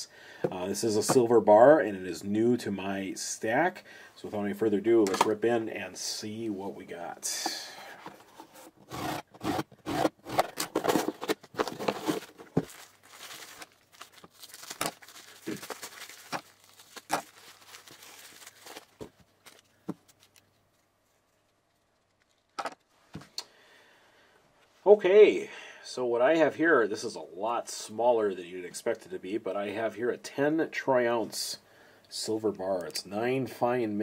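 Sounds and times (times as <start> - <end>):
packing material rustling: 8.2 - 22.9.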